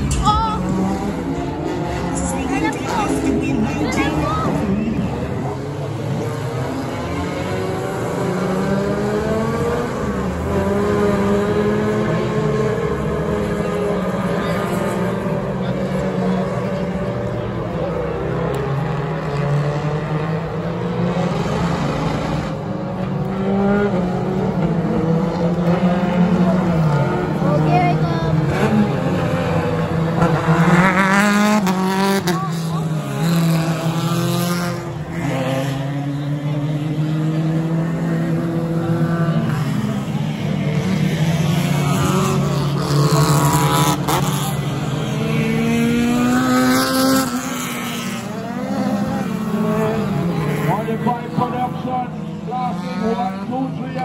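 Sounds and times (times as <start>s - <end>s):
race car engines passing: 0.0s - 54.0s.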